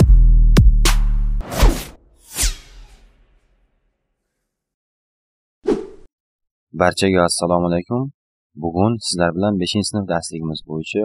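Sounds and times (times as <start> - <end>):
person speaking: 8.6 - 11.0.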